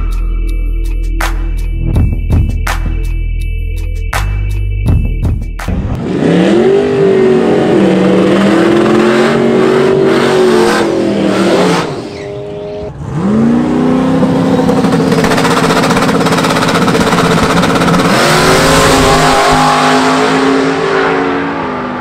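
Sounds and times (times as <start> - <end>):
car engine revving hard: 6.0 - 22.0.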